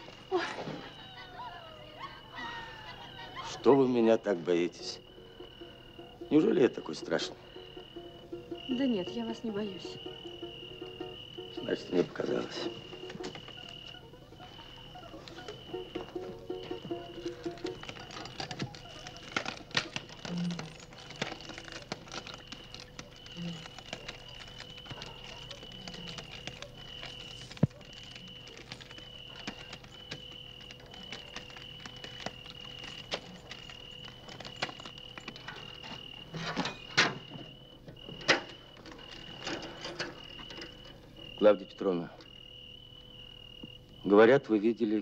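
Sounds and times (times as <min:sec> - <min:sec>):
crickets chirping: 0:00.0 - 0:45.0.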